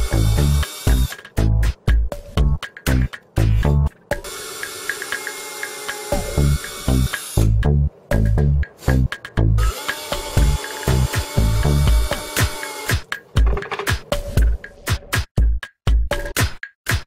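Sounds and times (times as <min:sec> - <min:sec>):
power drill boring plastic: 0:00.0 - 0:01.2, 0:04.2 - 0:07.4, 0:09.6 - 0:12.9
electronic music with drum beat: 0:00.0 - 0:17.0.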